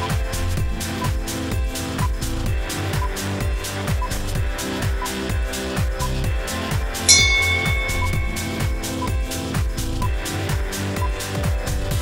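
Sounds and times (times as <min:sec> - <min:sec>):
short pip: 0:07.1 - 0:09.3
bell-like chime: 0:07.1 - 0:09.4.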